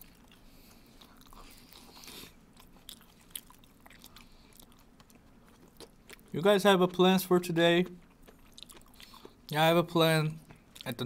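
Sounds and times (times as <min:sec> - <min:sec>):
faint chewing: 0:00.0 - 0:07.1, 0:07.8 - 0:09.6, 0:10.3 - 0:11.0.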